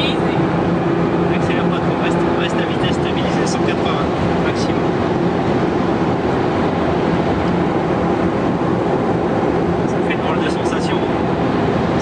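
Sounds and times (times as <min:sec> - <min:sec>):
car engine running steadily: 0:00.0 - 0:12.0
wind noise: 0:00.0 - 0:12.0.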